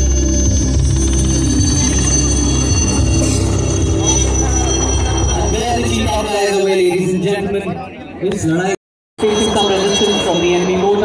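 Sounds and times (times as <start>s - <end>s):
helicopter rotor beating: 0.0s - 6.3s.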